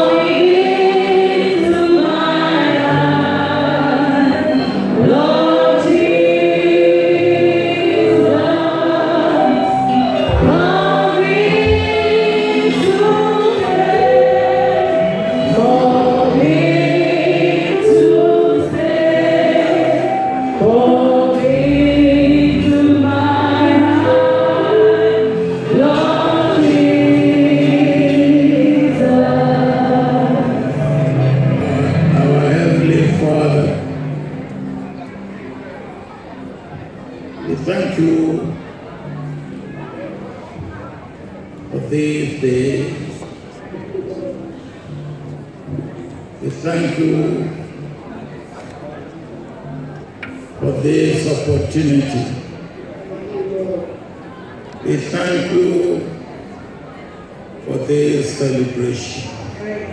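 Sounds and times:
choir singing a hymn: 0.0 - 34.7, 54.4 - 56.2.

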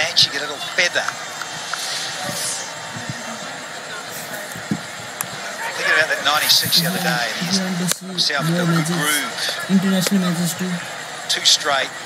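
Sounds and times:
broadcast hiss: 0.0 - 12.0
faint distant voices: 0.0 - 12.0.

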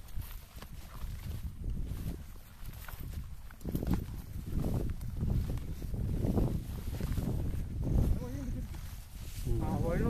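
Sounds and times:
footsteps through tall grass: 0.0 - 10.0
grass stems brushing: 0.0 - 10.0.

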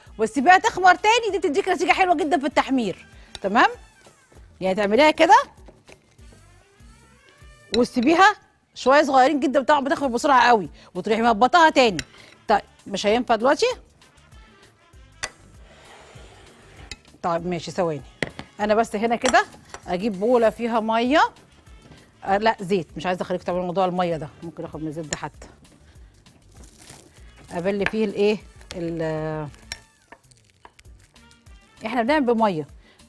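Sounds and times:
faint background music: 0.0 - 33.0
metal spoon clicking against bowl: 29.6 - 29.9.

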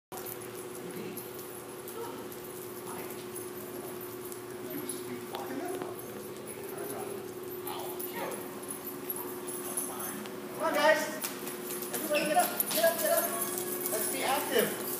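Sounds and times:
steady hum: 0.1 - 14.9
dogs whimpering: 11.9 - 14.1.

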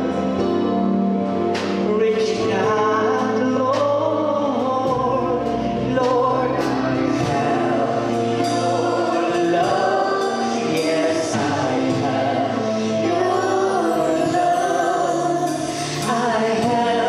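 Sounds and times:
sustained instrumental notes: 0.0 - 17.0
choir singing: 4.1 - 17.0.

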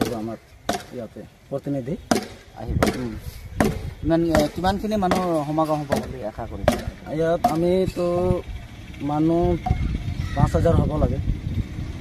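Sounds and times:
chopping strikes on wood: 0.0 - 1.1, 2.1 - 7.7
man talking: 0.0 - 11.3.

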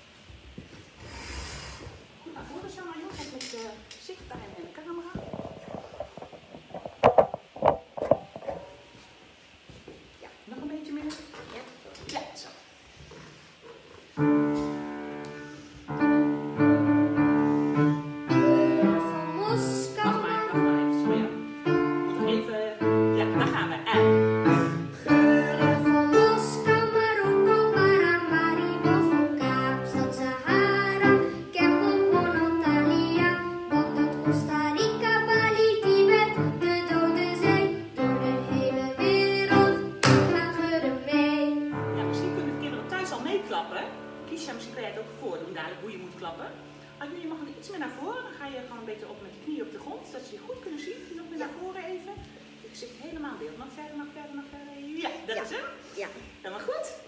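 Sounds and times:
upright piano playing chords: 14.2 - 50.4.

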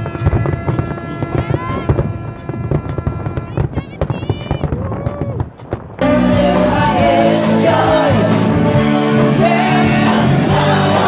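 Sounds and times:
fireworks popping and crackling: 0.0 - 6.0
live rock band with singing: 6.0 - 11.0
music and voices: 6.0 - 11.0.

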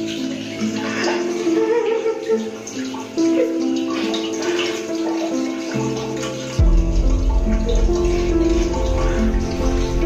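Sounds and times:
hands washing under water: 0.0 - 10.0
slow background music: 0.0 - 10.0
water running from tap: 0.0 - 10.0.

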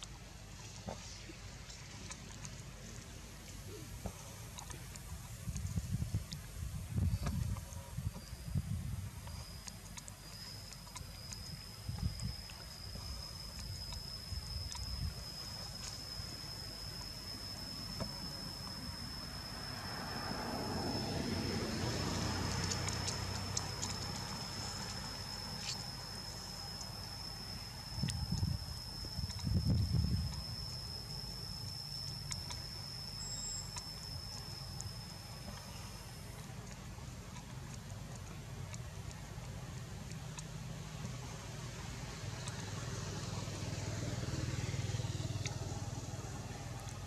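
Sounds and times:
steady high-pitched whine: 0.0 - 47.0.

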